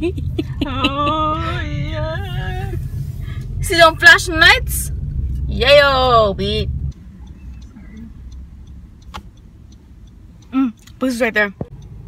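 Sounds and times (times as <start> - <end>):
car cabin rumble: 0.0 - 9.7
faint regular ticking: 2.9 - 12.0
sharp click: 9.0 - 9.4.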